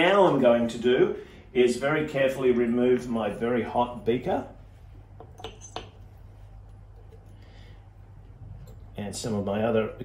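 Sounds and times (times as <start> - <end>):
glass beaker and tongs clinking: 5.2 - 6.1.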